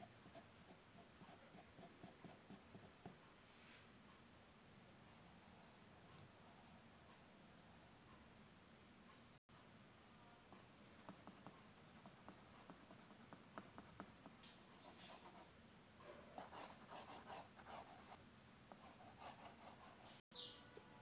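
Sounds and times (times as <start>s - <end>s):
pencil scratching on paper: 0.0s - 3.2s, 10.6s - 15.6s, 16.4s - 20.2s.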